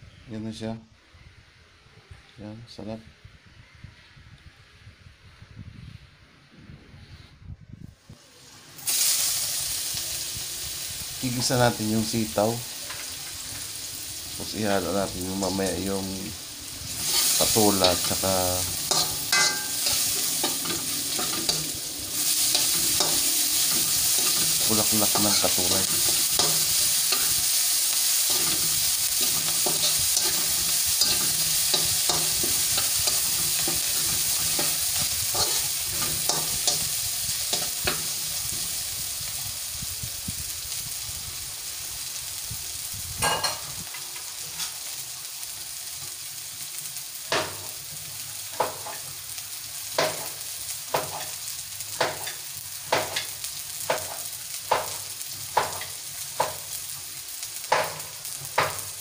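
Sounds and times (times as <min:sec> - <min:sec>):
garlic and onion sizzling in oil: 0:08.0 - 0:59.0
spatula stirring in wok: 0:16.9 - 0:38.8
sharp pops of frying oil: 0:18.9 - 0:27.5, 0:28.3 - 0:38.8, 0:43.2 - 0:44.0, 0:47.3 - 0:49.2, 0:49.9 - 0:59.0.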